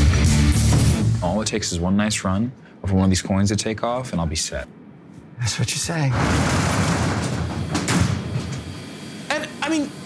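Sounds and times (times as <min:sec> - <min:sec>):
metal door sliding up: 0:06.1 - 0:08.7.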